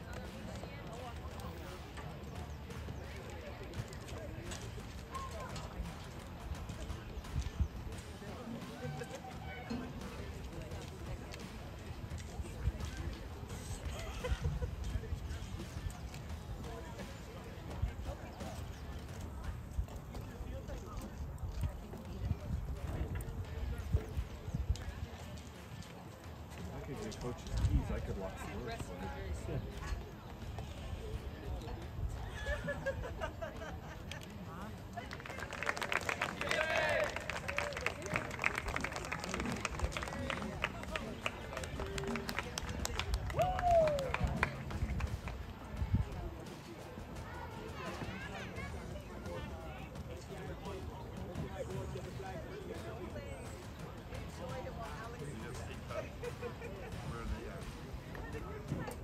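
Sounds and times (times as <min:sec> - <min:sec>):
distant chatter: 0:00.0 - 0:59.0
distant people talking: 0:00.0 - 0:59.0.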